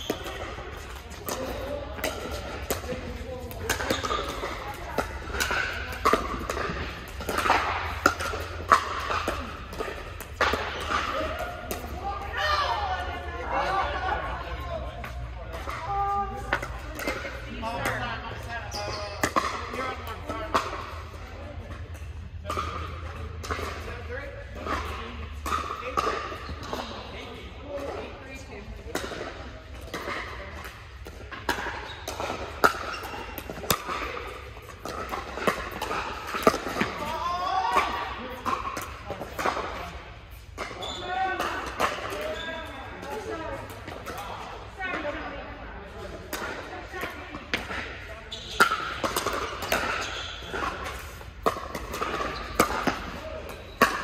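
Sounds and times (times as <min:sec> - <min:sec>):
ball bouncing on hard court: 0:00.0 - 0:12.3, 0:15.1 - 0:45.2, 0:46.2 - 0:54.0.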